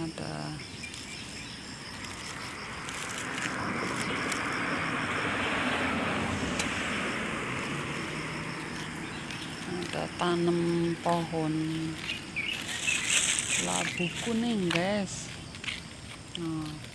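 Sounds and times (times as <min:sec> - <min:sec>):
road vehicle passing by: 0:01.1 - 0:16.8.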